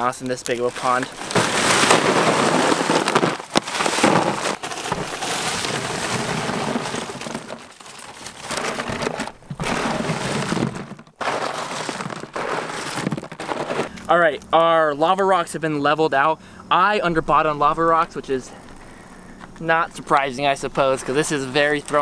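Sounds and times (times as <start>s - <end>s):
rocks clattering into a bin: 0.0s - 14.0s, 21.2s - 22.0s.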